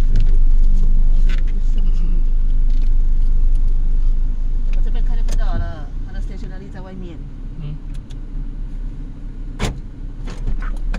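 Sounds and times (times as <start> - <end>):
car engine idling inside cabin: 0.0 - 10.9.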